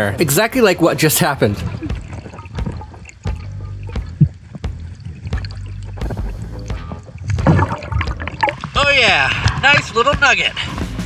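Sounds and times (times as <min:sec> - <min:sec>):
background music: 0:00.0 - 0:11.0
low rumble of river current: 0:00.7 - 0:10.5
rocks clicking underwater: 0:01.6 - 0:10.4.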